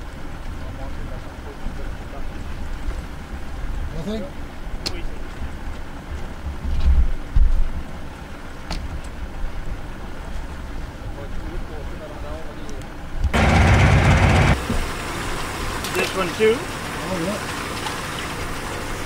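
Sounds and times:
wind rumbling on microphone: 5.4s - 8.1s
loud rushing burst of noise: 13.4s - 14.7s.

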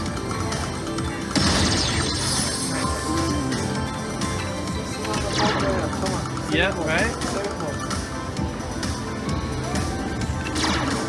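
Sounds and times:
slot machine bonus music: 0.0s - 8.2s, 9.4s - 11.0s.

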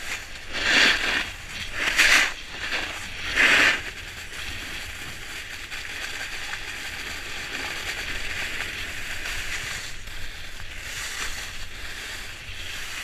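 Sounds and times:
skis hissing over snow: 0.0s - 13.0s
wind rumbling on microphone: 0.0s - 13.0s.

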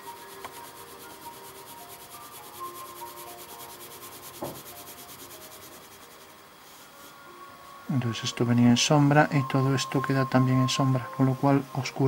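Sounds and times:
pencil scratching on paper: 0.0s - 6.8s
soft knock: 4.4s - 4.7s.

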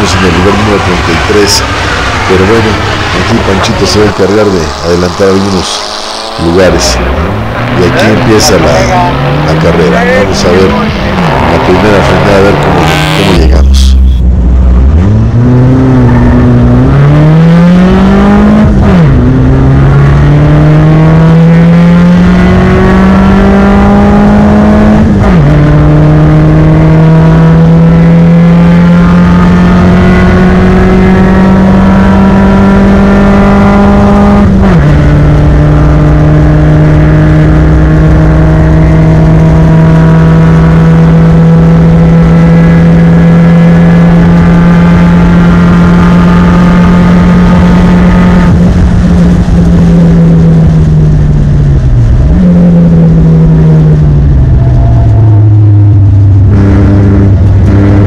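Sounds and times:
race car engine accelerating: 0.0s - 58.0s.

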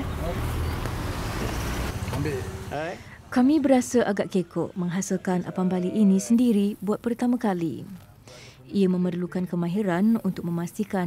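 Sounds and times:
road traffic rumble: 0.0s - 8.7s.

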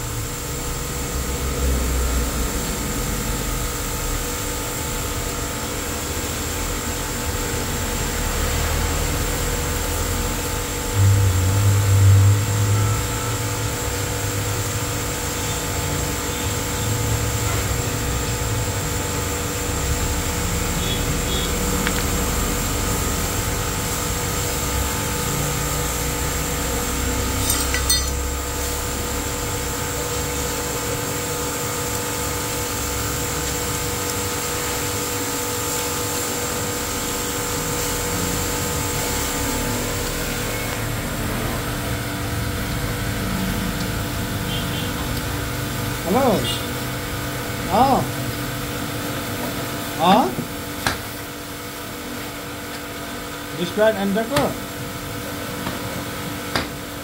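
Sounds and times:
machinery droning: 0.0s - 48.4s
tool clinking against gears: 27.4s - 28.2s.

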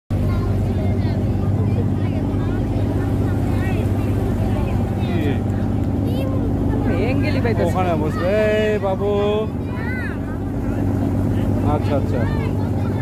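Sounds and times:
boat engine humming: 0.1s - 13.0s
faint voices talking: 0.1s - 13.0s.

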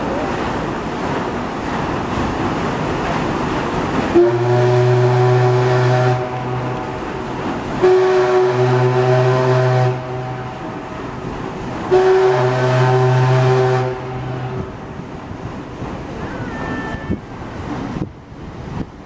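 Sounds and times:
steamer whistle blasts: 4.1s - 6.9s, 7.8s - 10.7s, 11.9s - 14.6s, 16.2s - 17.2s.

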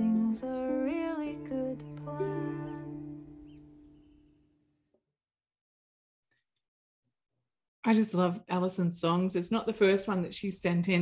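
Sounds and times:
ukulele chord ringing: 0.0s - 3.0s
small birds chirping: 0.0s - 4.8s, 9.1s - 11.0s.

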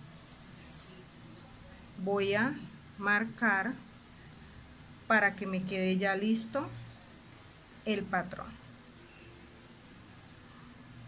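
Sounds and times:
tape measure rustling on paper: 0.2s - 1.0s.

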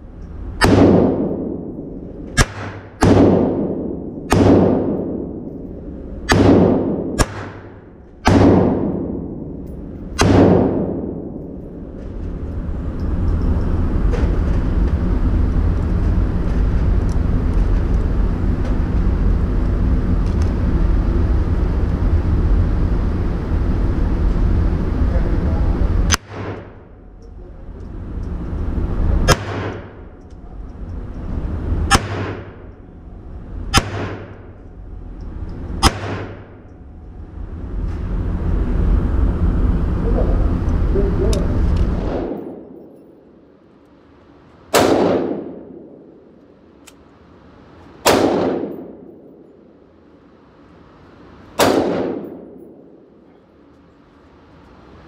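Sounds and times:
steady low rumble: 0.0s - 55.0s
pistol shots echoing: 0.6s - 5.5s, 6.3s - 9.5s, 10.1s - 11.2s, 29.3s - 30.0s, 31.9s - 32.6s, 33.7s - 34.4s, 35.8s - 36.5s, 44.7s - 46.1s, 48.0s - 49.3s, 51.6s - 52.9s.

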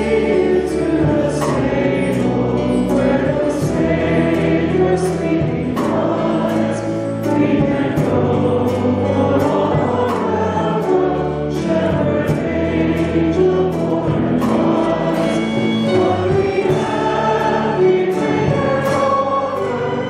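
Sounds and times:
choir singing a hymn: 0.0s - 20.0s.

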